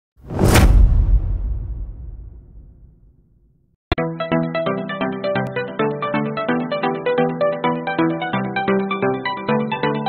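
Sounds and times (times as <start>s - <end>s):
whoosh with deep boom: 0.2s - 3.2s.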